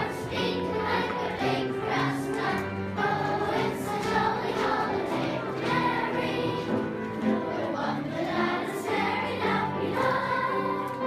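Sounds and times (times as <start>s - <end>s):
children's choir singing: 0.0s - 11.0s
musical accompaniment: 0.0s - 11.0s.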